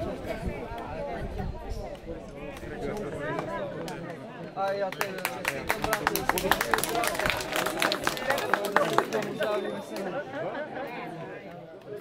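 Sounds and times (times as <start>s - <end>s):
mixed talking voices: 0.0s - 12.0s
small group clapping: 2.5s - 10.3s.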